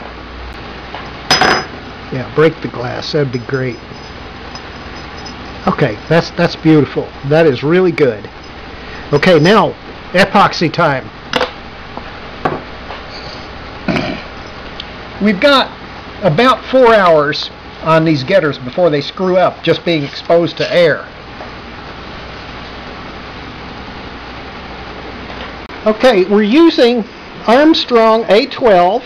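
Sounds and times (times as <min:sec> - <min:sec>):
workshop room noise: 0:00.0 - 0:29.0
knocks on a workbench: 0:12.4 - 0:12.7.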